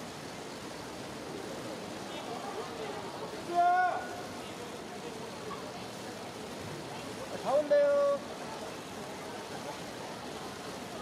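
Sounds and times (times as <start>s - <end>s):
street and crowd noise: 0.0s - 11.0s.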